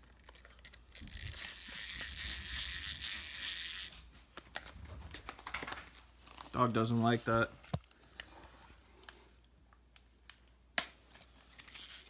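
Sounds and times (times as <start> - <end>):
clockwork toy motor whirring: 0.6 - 4.0, 11.6 - 12.0.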